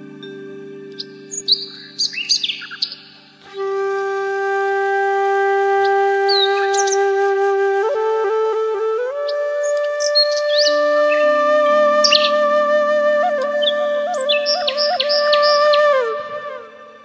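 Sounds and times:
low sustained drone: 0.0s - 8.4s
flute holding long notes: 0.0s - 17.0s
high bird chirps: 0.9s - 3.3s, 9.6s - 11.3s.

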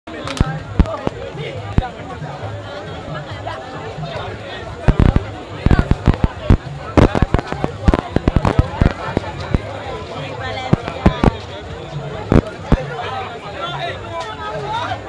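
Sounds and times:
crowd chatter: 0.1s - 15.0s
firecrackers banging: 4.9s - 9.6s.

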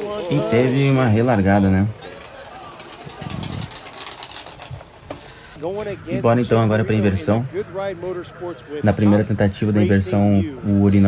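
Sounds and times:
faint car engines: 0.0s - 11.0s.

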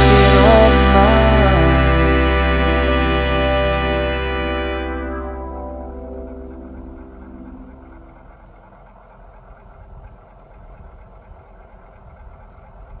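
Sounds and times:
background music chord: 0.0s - 8.2s
low background rumble: 0.0s - 11.4s.

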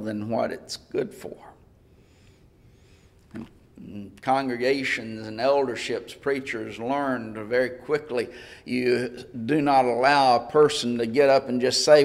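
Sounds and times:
man speaking: 0.0s - 1.6s, 3.3s - 12.0s.

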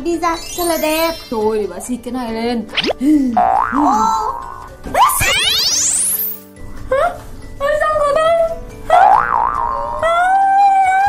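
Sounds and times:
held comedy tone: 2.7s - 6.4s
cartoon boing with wobbling pitch: 2.8s - 5.8s, 8.9s - 10.2s.

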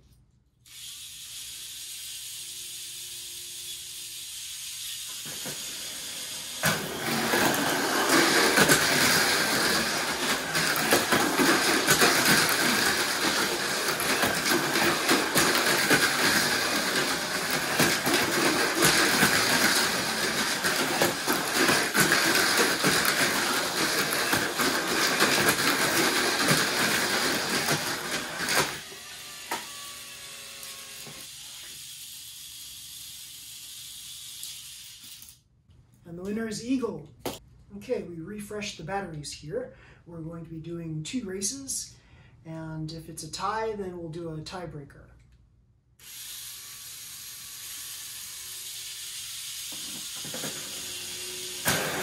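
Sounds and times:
small electric motors whirring: 0.6s - 35.4s, 46.0s - 52.0s
rollers rattling on track walls: 6.5s - 28.8s.

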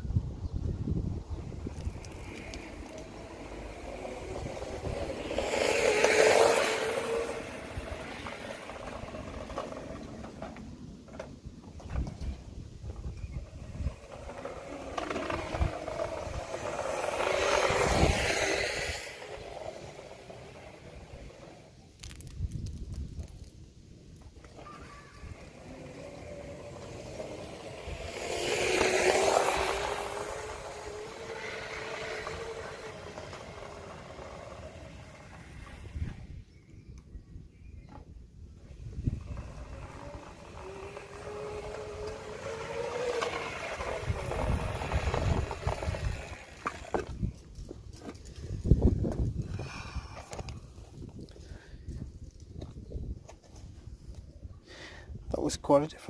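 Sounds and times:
electric scooter passing: 0.0s - 22.2s, 23.2s - 54.6s.

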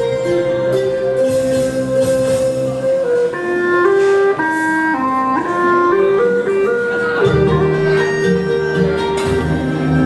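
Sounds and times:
bamboo flute slow melody: 0.0s - 10.0s.

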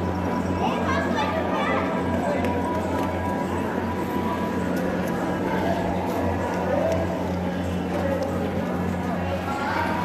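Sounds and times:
people chattering: 0.0s - 10.0s
steady low hum: 0.0s - 10.0s.

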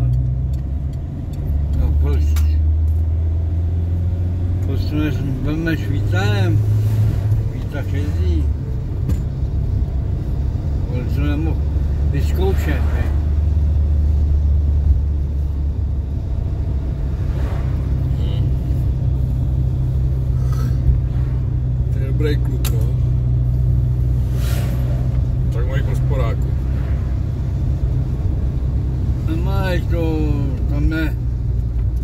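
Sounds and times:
car engine and tyres drone: 0.0s - 32.0s.

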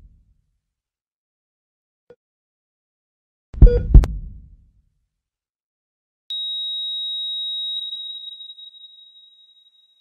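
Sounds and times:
high-pitched electronic tone: 6.3s - 10.0s.

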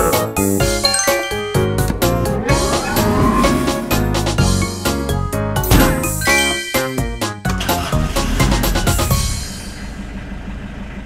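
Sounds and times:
cartoon background music: 0.0s - 9.5s
sparkling chime jingle: 0.8s - 1.8s, 6.1s - 7.3s
rising sweep: 1.6s - 5.2s.

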